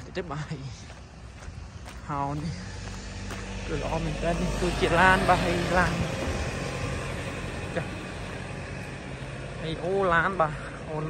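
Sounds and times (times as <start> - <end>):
light truck engine humming: 0.0 - 11.0.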